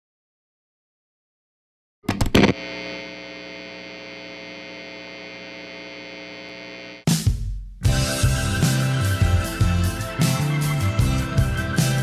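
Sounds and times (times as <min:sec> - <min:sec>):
distorted humming drone: 0:02.1 - 0:07.0.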